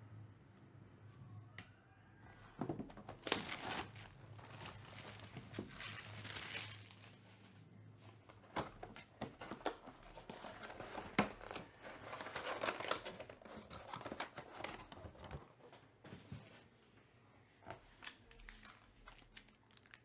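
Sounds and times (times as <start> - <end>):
plastic wrap tearing and crinkling: 3.0 - 7.3, 8.7 - 15.0, 18.0 - 20.0.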